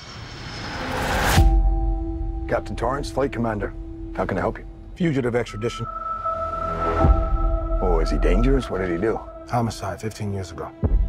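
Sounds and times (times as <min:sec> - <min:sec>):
rushing riser: 0:00.0 - 0:01.6, 0:05.8 - 0:09.6
steady low note: 0:01.4 - 0:10.2.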